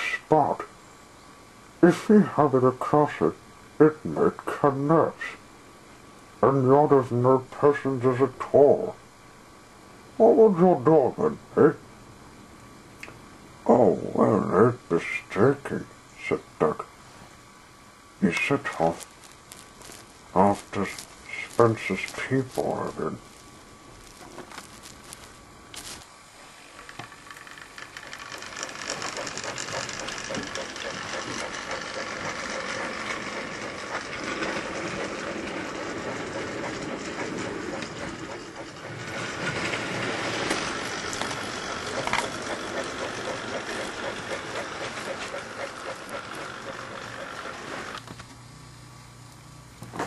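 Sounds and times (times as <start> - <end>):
model train whirring and rattling: 18.2 - 48.2.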